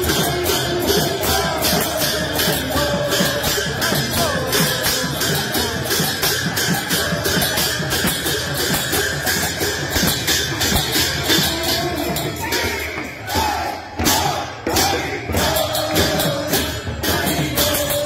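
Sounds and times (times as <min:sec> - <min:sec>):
steady percussion beat: 0:00.0 - 0:18.0
voices singing: 0:00.0 - 0:18.0.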